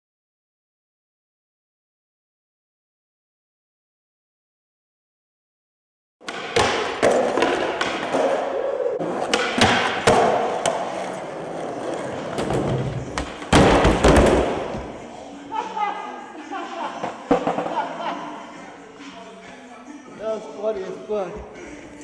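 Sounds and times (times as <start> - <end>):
skateboard wheels rolling on concrete: 6.2 - 14.9.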